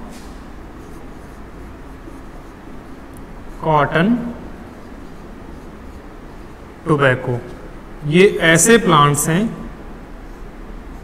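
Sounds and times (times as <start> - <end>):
low room hum: 0.0 - 11.0
marker squeaking on whiteboard: 0.7 - 6.7.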